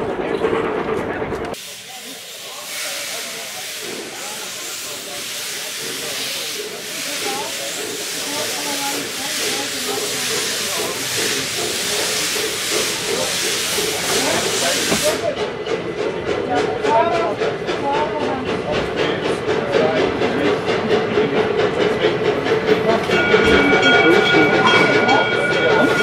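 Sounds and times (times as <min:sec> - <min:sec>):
steam railcar hissing in pulses: 0:01.5 - 0:26.0.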